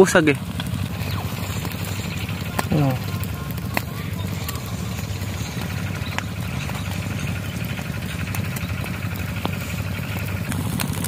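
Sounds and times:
reeds and straw crackling in fire: 0:00.0 - 0:11.0
steady low hum: 0:00.0 - 0:11.0.

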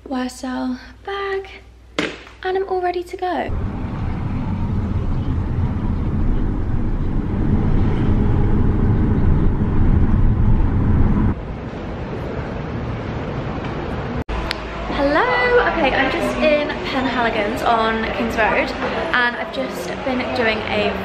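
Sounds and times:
car engine and tyre rumble: 0:03.5 - 0:11.7
street hum: 0:03.5 - 0:21.0.

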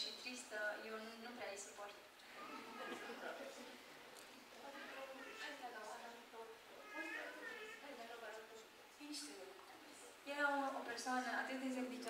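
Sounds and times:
woman talking: 0:00.0 - 0:03.8, 0:04.5 - 0:12.0.

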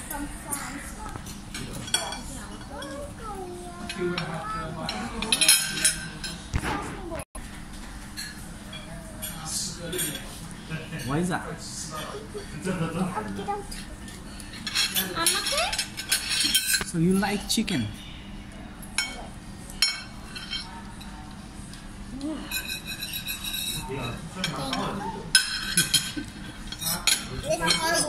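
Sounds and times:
cutlery scraping ceramic plates: 0:14.3 - 0:17.3, 0:22.4 - 0:28.0.

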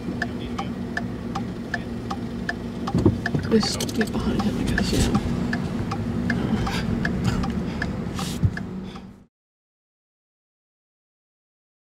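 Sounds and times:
vehicle rumble inside cabin: 0:00.0 - 0:09.3
soft regular ticks: 0:03.2 - 0:08.7.

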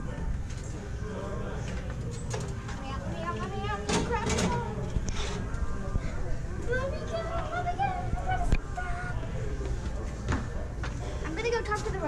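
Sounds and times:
children chattering: 0:02.5 - 0:09.8, 0:10.6 - 0:12.0.

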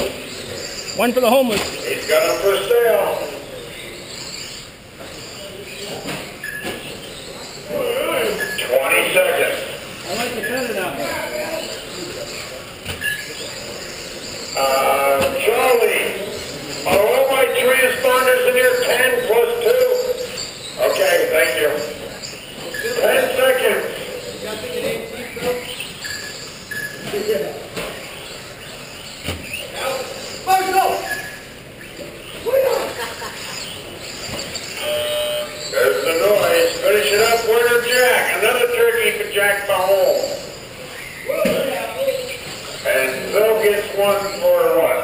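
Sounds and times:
person talking: 0:01.0 - 0:01.7
man talking: 0:01.0 - 0:03.4
electronic beep: 0:06.4 - 0:07.3, 0:22.2 - 0:23.2, 0:25.8 - 0:27.3, 0:34.2 - 0:36.8.

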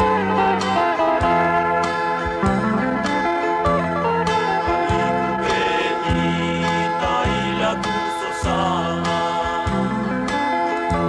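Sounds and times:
sustained accompaniment: 0:00.0 - 0:07.8
group singing: 0:04.9 - 0:09.8.

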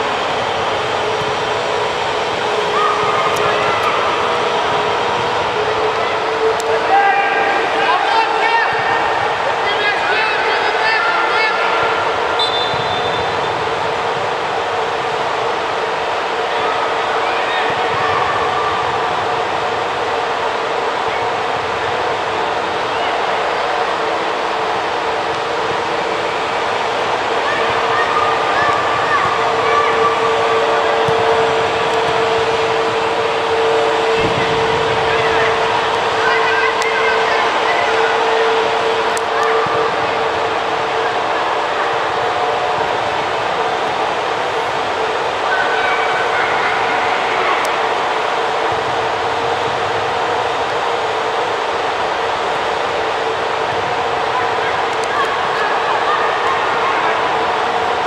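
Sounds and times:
players shouting: 0:00.0 - 0:58.0
steady hum: 0:00.0 - 0:58.0.

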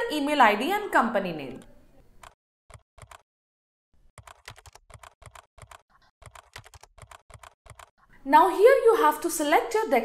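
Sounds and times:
computer keyboard typing: 0:02.2 - 0:03.2, 0:04.1 - 0:08.1.

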